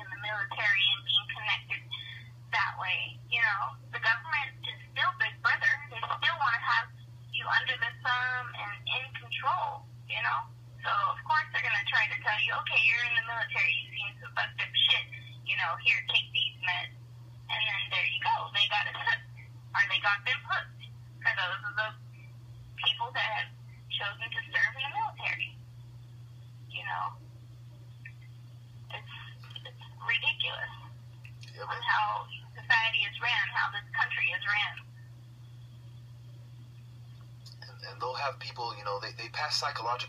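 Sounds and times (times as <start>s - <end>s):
person talking over telephone: 0.0s - 22.0s, 22.8s - 25.5s, 26.7s - 27.2s, 28.9s - 34.8s, 37.5s - 40.0s
low steady hum: 0.0s - 40.0s.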